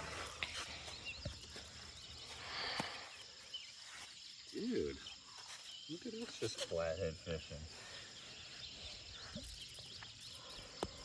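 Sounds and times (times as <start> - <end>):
high insect drone: 0.0 - 11.0.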